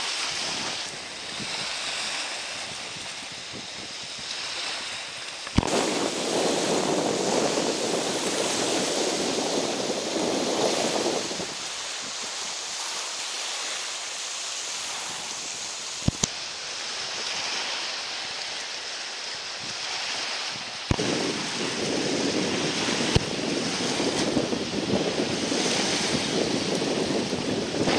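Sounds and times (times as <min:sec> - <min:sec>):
wind on microphone: 0:00.0 - 0:27.9.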